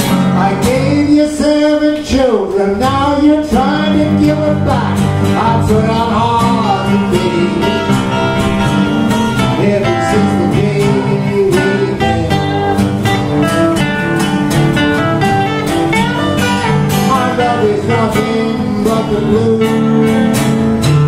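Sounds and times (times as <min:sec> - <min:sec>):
acoustic guitars playing blues: 0:00.0 - 0:21.0
person singing: 0:00.1 - 0:13.4, 0:15.9 - 0:20.4.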